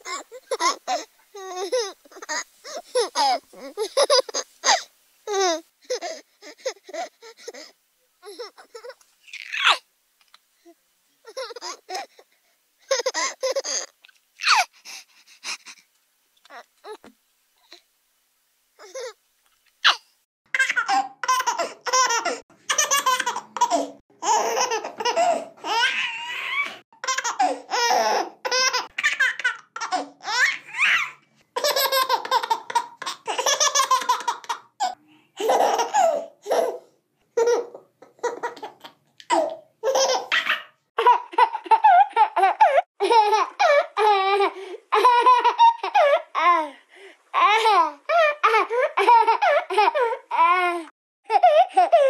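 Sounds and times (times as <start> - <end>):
baby breathing: 0.0 - 8.9, 14.5 - 15.9
baby laughing: 0.0 - 9.8, 11.2 - 12.2, 12.8 - 14.7, 19.8 - 20.0, 20.6 - 36.8, 37.4 - 46.6, 47.4 - 50.6.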